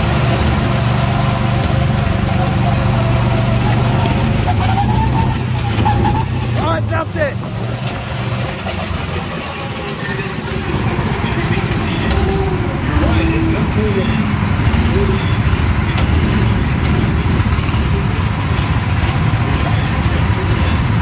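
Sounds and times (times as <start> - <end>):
go-kart engines droning: 0.0 - 21.0.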